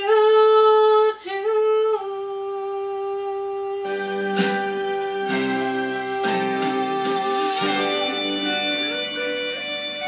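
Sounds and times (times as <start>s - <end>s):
instrumental music: 3.0s - 10.0s.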